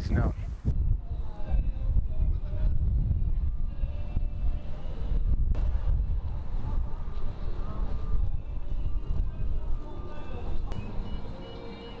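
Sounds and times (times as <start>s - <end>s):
low outdoor rumble: 0.0s - 12.0s
faint voices: 0.2s - 12.0s.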